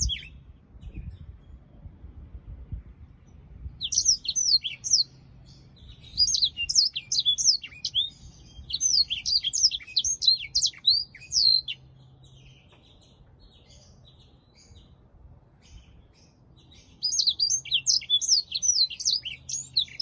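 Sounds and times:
canary twittering song: 0.0 - 1.6, 3.7 - 15.0, 15.6 - 20.0.

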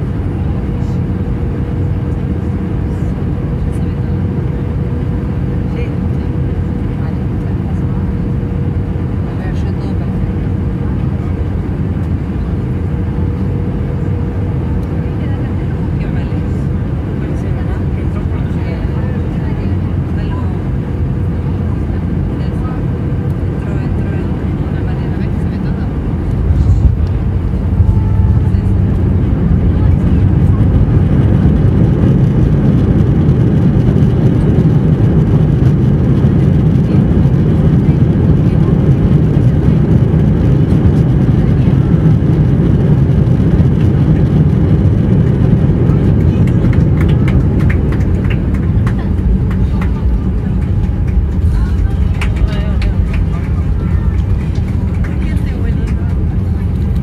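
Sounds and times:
jet engines rumbling: 0.0 - 57.0.

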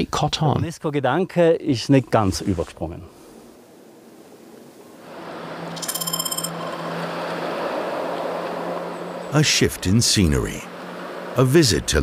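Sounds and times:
road traffic noise: 3.1 - 12.0
high ringing sound: 5.6 - 7.2.

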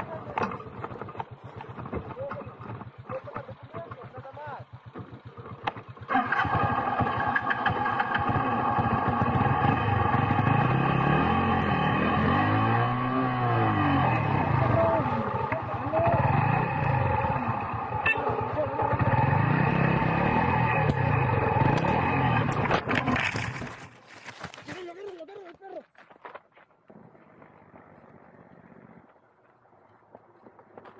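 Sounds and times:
motorcycle engine revving: 0.0 - 24.0, 26.9 - 30.9.

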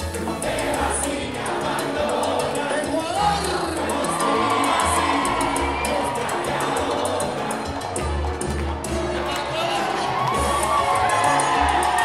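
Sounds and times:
live salsa band playing: 0.0 - 12.0
audience cheering and shouting: 0.6 - 12.0.

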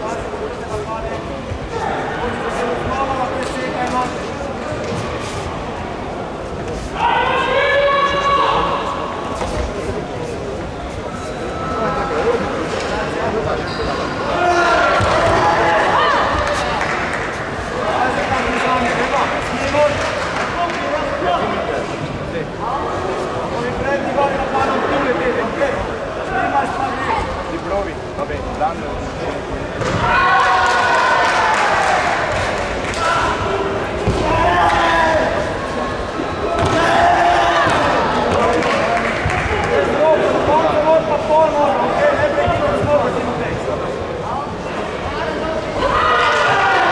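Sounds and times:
voices calling out in hall: 0.0 - 46.9.

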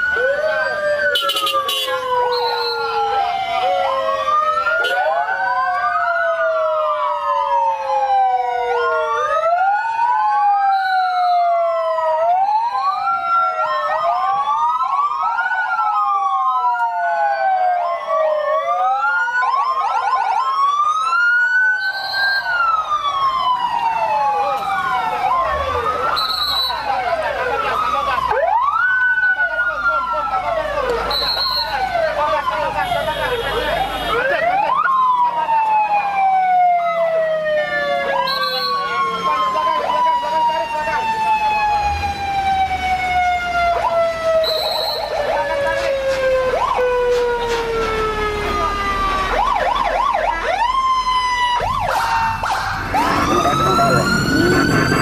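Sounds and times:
vehicle sirens wailing: 0.0 - 55.0
short high siren chirps: 1.1 - 3.1, 10.6 - 11.5, 21.7 - 22.6, 51.7 - 55.0.

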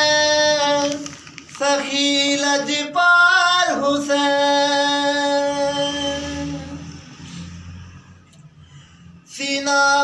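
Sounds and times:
man singing unaccompanied: 0.0 - 7.0, 9.3 - 10.0.

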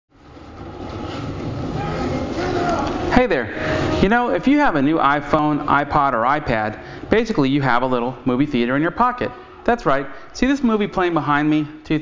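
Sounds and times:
low rumbling film soundtrack: 0.1 - 4.3.

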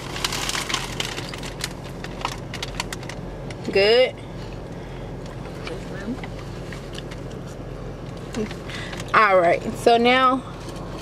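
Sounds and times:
car cabin low hum: 0.0 - 11.0.

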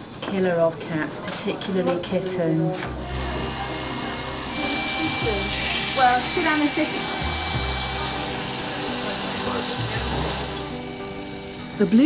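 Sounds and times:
electric hair clippers buzzing: 2.9 - 12.0.

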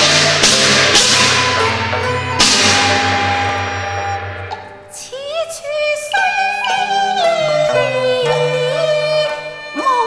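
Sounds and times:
percussion crashes: 0.0 - 5.1.

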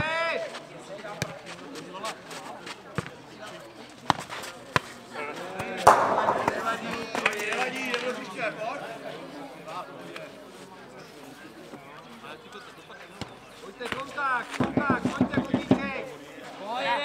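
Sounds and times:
ball kicked and bouncing: 5.9 - 7.3.

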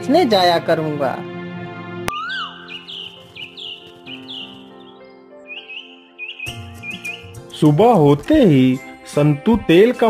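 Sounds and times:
soft background music: 0.0 - 10.0
rising-then-falling whistle: 2.1 - 2.8
bird chirps: 2.1 - 7.8.

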